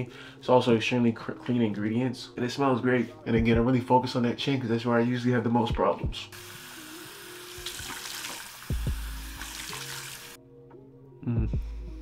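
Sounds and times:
background music with bass: 0:00.0 - 0:07.9, 0:08.7 - 0:12.0
hands rinsing face with water: 0:06.7 - 0:10.4.

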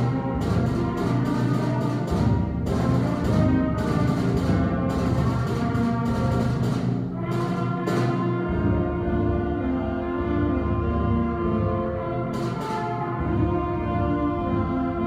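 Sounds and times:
percussion strokes: 0:00.0 - 0:09.0, 0:12.2 - 0:13.8.

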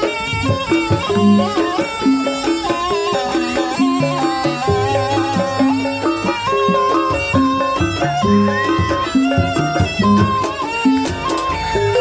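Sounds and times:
drum strokes: 0:00.0 - 0:12.0
traditional melody of held notes: 0:00.0 - 0:12.0.

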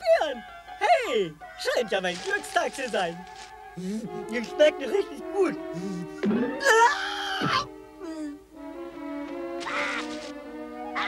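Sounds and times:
background music with held notes: 0:00.0 - 0:11.0
cartoon stork squawk: 0:09.6 - 0:10.3.

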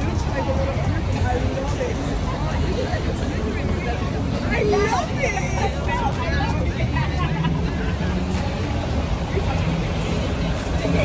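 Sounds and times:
coach engine rumble: 0:00.0 - 0:11.0
people chattering: 0:00.0 - 0:11.0
road traffic: 0:00.0 - 0:11.0.

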